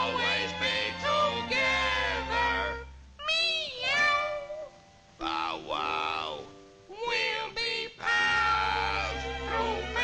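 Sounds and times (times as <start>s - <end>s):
cartoon cat meowing: 3.2s - 4.7s.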